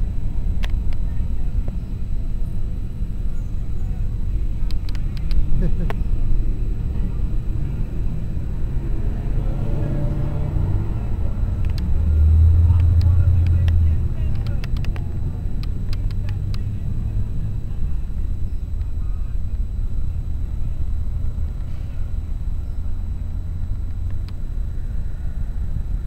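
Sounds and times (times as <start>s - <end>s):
traffic rumble: 0.0s - 26.0s.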